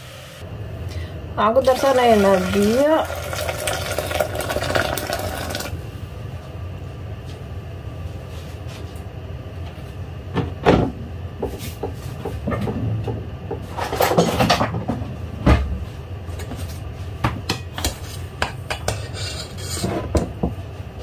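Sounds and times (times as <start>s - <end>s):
low steady hum: 0.0s - 21.0s
kitchen tap running: 1.6s - 5.8s.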